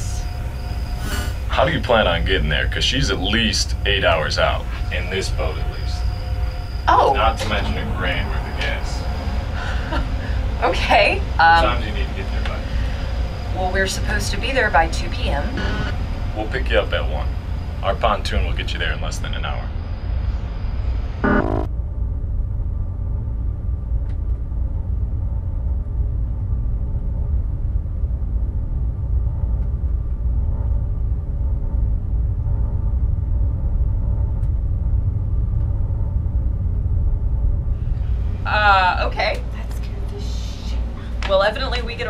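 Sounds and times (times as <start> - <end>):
faint sustained tones: 0.0 - 21.7
steady low rumble: 0.0 - 42.0.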